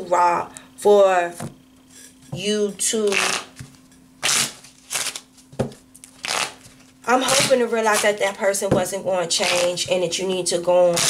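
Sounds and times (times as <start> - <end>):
tarot cards being shuffled: 3.1 - 8.3, 9.4 - 9.8.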